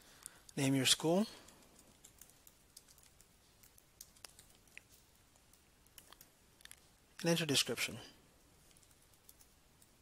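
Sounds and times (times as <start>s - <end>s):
typing on computer keyboard: 1.4s - 6.8s, 8.6s - 10.0s.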